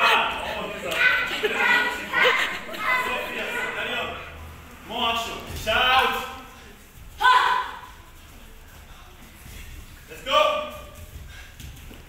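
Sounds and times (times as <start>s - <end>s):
fighters shouting: 7.2s - 7.8s.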